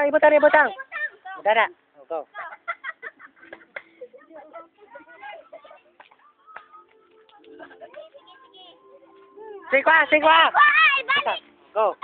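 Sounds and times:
faint children's voices: 3.6 - 12.0.

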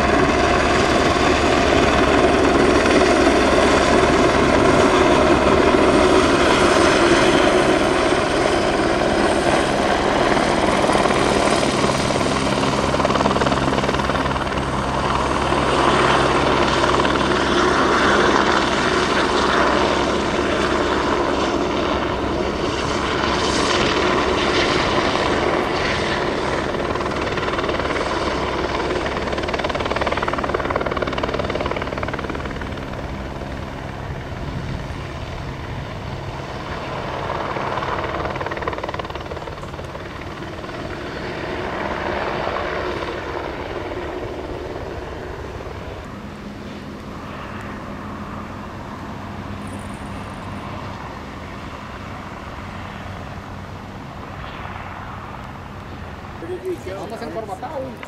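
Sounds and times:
helicopter rotor and turbine: 0.0 - 58.0.

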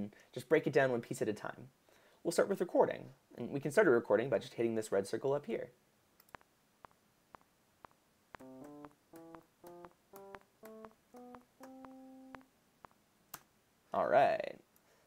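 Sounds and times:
metronome ticking: 6.3 - 13.0
electric piano notes: 8.4 - 12.4.

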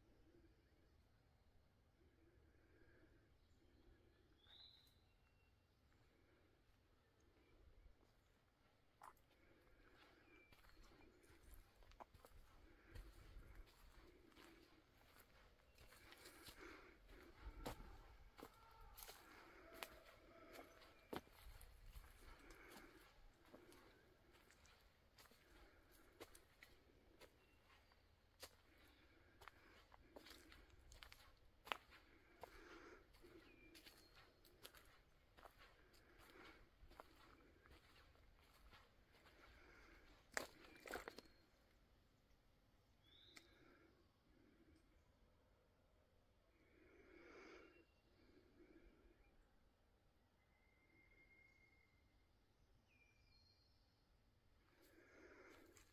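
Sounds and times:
footsteps on dirt trail: 9.0 - 41.4.

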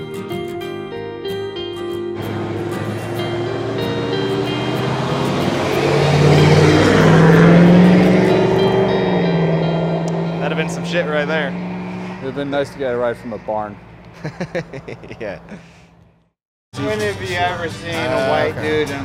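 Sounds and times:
truck passing on highway: 2.2 - 16.2
man speaking: 12.2 - 13.8, 14.9 - 15.6.

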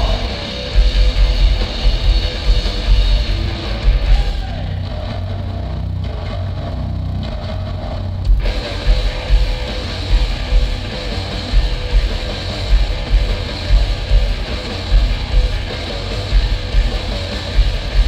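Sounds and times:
drums and cymbals crashing: 0.0 - 5.0, 8.3 - 18.0
heavy metal band playing live: 0.0 - 18.0.

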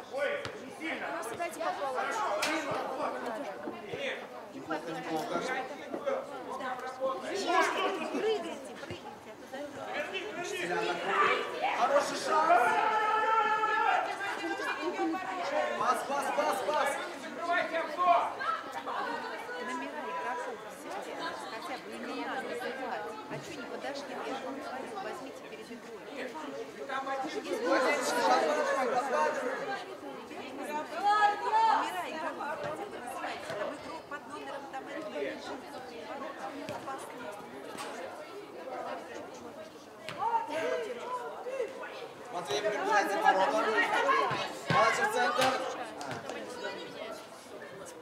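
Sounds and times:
people chattering and calling out: 0.0 - 48.0
people shouting: 11.0 - 14.4.

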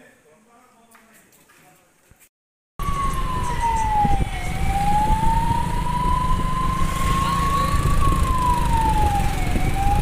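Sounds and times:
emergency vehicle siren: 2.8 - 10.0
engine and road rumble: 2.8 - 10.0.

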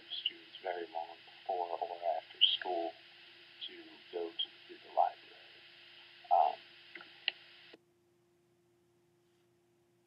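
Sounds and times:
recording hiss: 0.0 - 7.8.

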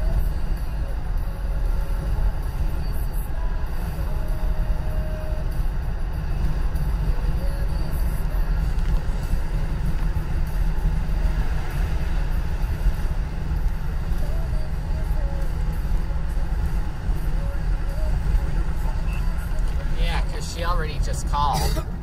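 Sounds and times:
car road and engine rumble: 0.0 - 22.0.

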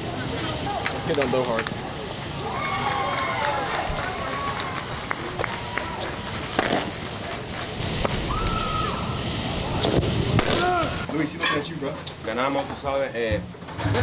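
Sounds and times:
indistinct voices and chatter: 0.0 - 14.0.

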